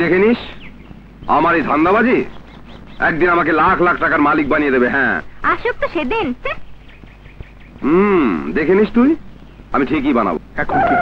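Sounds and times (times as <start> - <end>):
film dialogue: 0.0 - 11.0.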